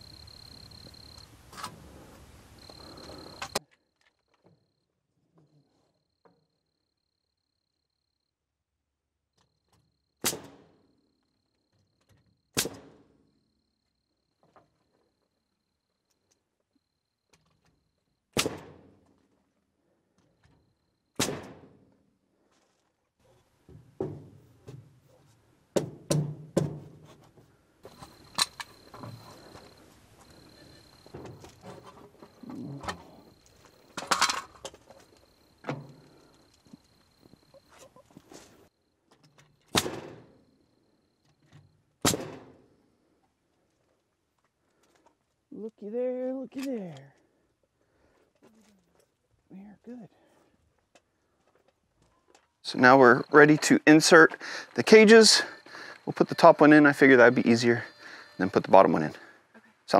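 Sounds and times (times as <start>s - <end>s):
faint steady hiss: 52.6s - 59.9s.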